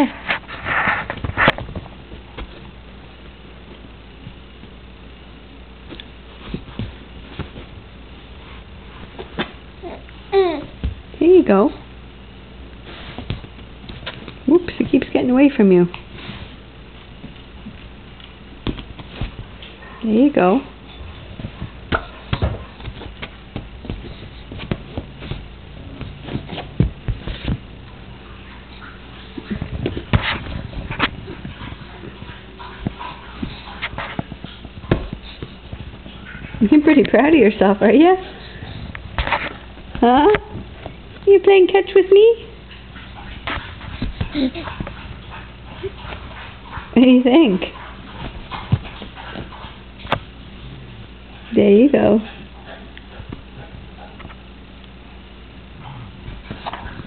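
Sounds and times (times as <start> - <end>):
infant grunting: 9.8 - 10.7.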